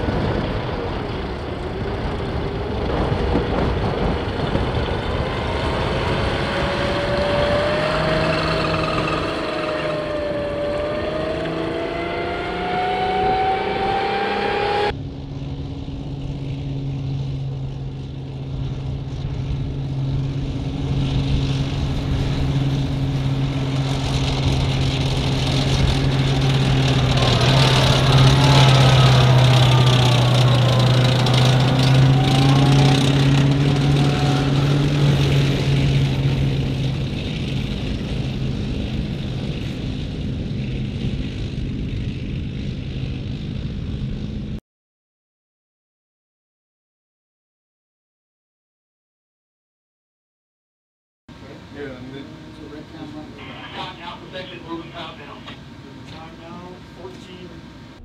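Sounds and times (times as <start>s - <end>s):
tracked vehicle engine drone: 0.0s - 44.6s, 51.3s - 58.0s
tracked vehicle engine whine: 0.0s - 44.6s, 51.3s - 58.0s.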